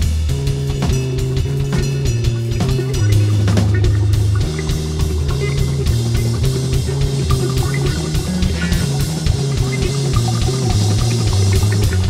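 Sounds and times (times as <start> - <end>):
bass guitar: 0.0 - 12.0
drum kit: 0.0 - 12.0
electric guitar: 0.0 - 12.0.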